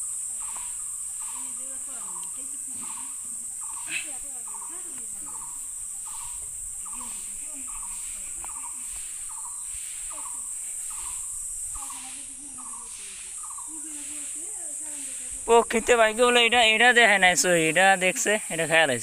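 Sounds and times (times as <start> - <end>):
crickets chirping: 0.0 - 19.0.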